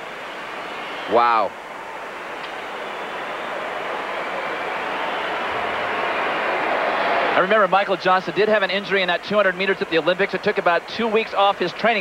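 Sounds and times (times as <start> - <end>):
stadium crowd hubbub: 0.0 - 12.0.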